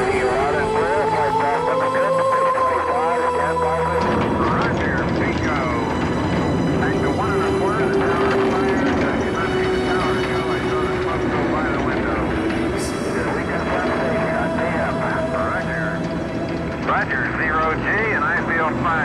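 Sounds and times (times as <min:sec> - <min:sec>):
overlapping voices: 0:00.0 - 0:06.0, 0:06.7 - 0:19.0
rocket engines roaring: 0:00.0 - 0:19.0.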